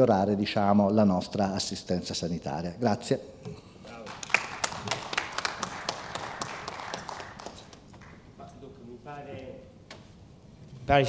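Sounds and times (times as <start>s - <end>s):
audience applauding: 3.9s - 8.4s.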